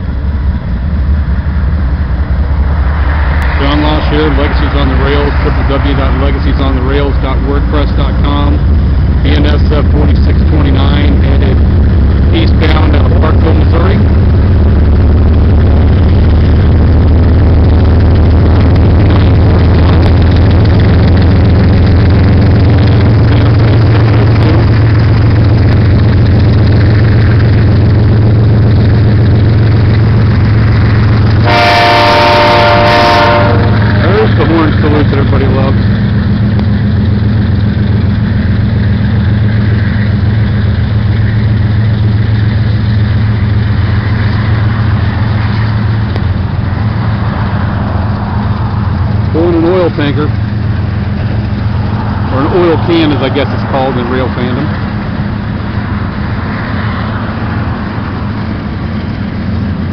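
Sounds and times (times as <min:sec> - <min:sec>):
diesel locomotive engines droning: 0:00.0 - 0:59.9
locomotive air horn: 0:31.4 - 0:35.4.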